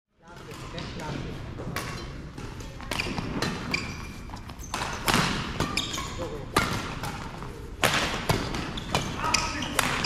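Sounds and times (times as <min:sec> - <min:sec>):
racket hitting shuttlecock: 0:00.3 - 0:09.2.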